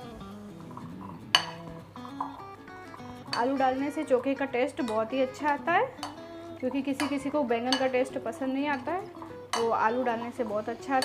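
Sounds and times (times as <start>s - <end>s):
soft guitar music: 0.0s - 11.0s.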